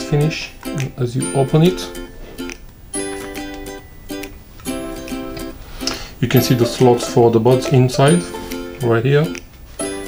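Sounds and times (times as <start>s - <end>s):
plucked string chords: 0.0s - 10.0s.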